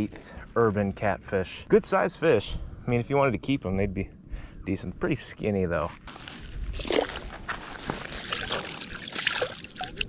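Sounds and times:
hands splashing in pond water: 6.7s - 10.0s
water trickling: 8.2s - 10.0s.

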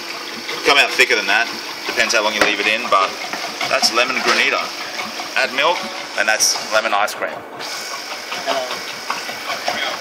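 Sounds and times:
freezer machine humming: 0.0s - 10.0s.

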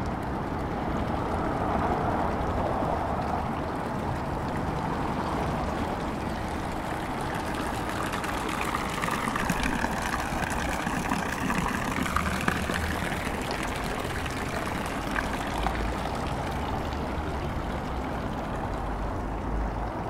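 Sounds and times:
fountain water splashing: 0.0s - 20.0s
town traffic: 0.0s - 20.0s.

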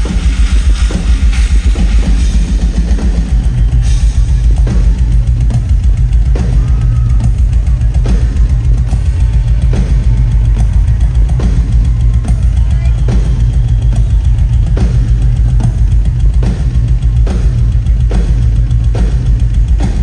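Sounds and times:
bass drum pounding: 0.0s - 20.0s.

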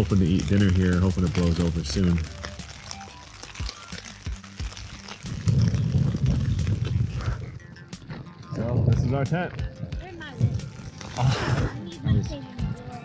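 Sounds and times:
rain pattering on tent fabric: 0.0s - 12.5s.

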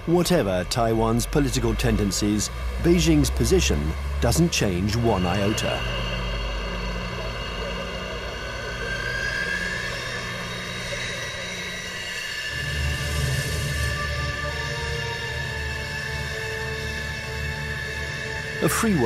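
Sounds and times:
jet engine whine: 0.0s - 19.0s.

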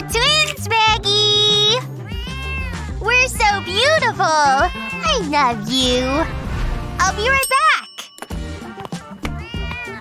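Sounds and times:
upbeat background music: 0.0s - 10.0s
cat meowing: 2.0s - 5.3s, 9.3s - 10.0s.

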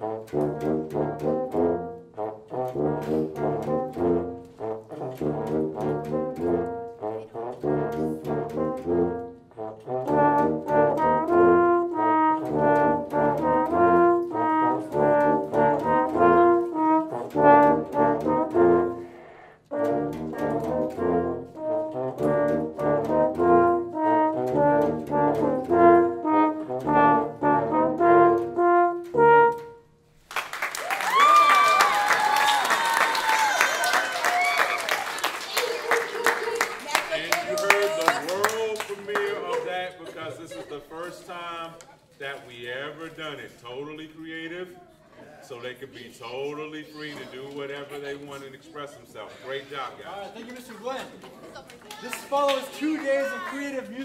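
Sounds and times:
brass quartet playing: 0.0s - 30.0s
applause: 30.2s - 39.8s, 50.3s - 54.0s
cheering voices: 30.8s - 38.7s, 51.9s - 53.9s.

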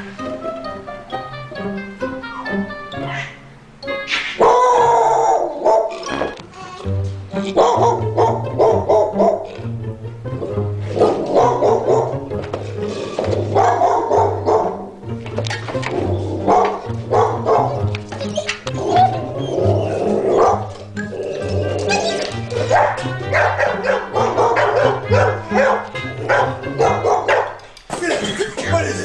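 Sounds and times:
dog barking: 4.4s - 6.0s, 7.6s - 9.5s, 11.0s - 12.2s, 13.5s - 14.8s, 16.5s - 17.8s, 20.3s - 20.8s, 22.6s - 27.6s.

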